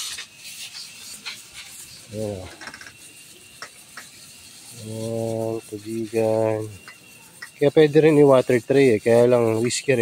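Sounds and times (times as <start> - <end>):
hose water spray hissing: 0.0 - 10.0.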